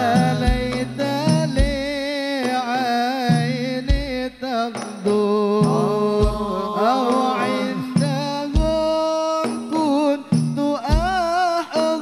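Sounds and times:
low beats: 0:00.0 - 0:02.0, 0:05.6 - 0:09.0
men singing devotional chant: 0:00.0 - 0:12.0.

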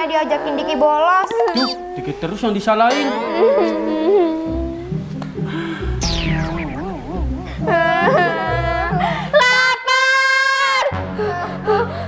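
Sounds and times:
background music: 0:03.1 - 0:12.0
low bass: 0:05.8 - 0:08.8.

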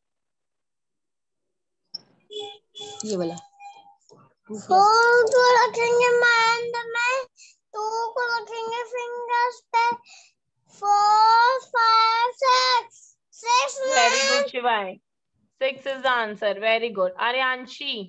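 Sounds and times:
child counting aloud: 0:04.6 - 0:10.0, 0:10.7 - 0:14.5.

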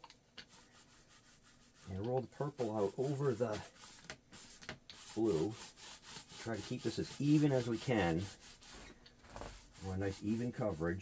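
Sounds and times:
paint roller rubbing on board: 0:00.4 - 0:11.0.

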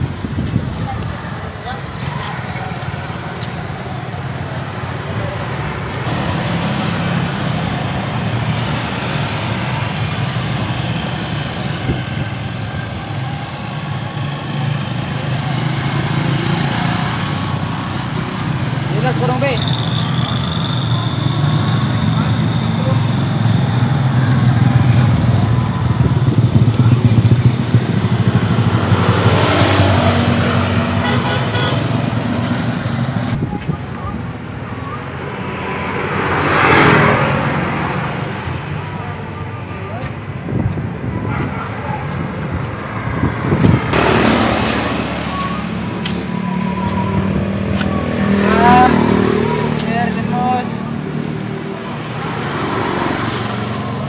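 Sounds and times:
motorcycles passing: 0:00.0 - 0:54.0.

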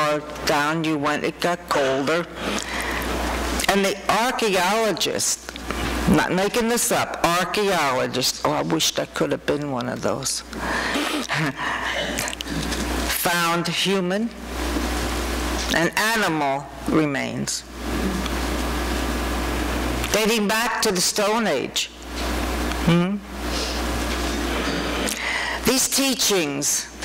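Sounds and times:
person speaking: 0:00.0 - 0:14.4, 0:15.6 - 0:18.2, 0:20.1 - 0:21.9, 0:25.6 - 0:27.0
steady low hum: 0:00.0 - 0:27.0.

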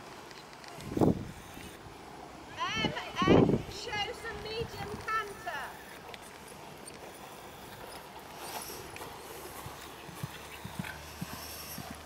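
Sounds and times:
horse hoofbeats on sand: 0:09.0 - 0:12.0.

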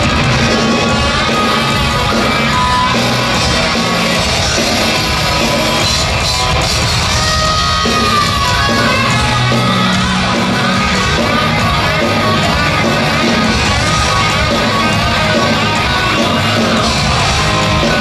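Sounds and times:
heavy metal band playing live: 0:00.0 - 0:18.0.

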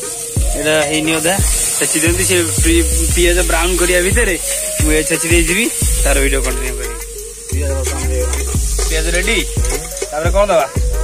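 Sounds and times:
music with heavy bass beat: 0:00.0 - 0:11.0
onions sizzling in a pot: 0:00.0 - 0:11.0
person singing: 0:04.4 - 0:10.1.

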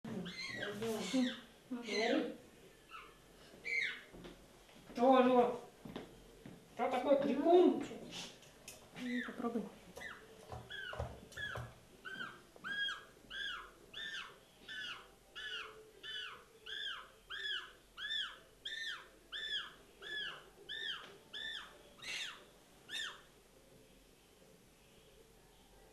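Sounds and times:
penguin chick peeping: 0:09.0 - 0:23.3.

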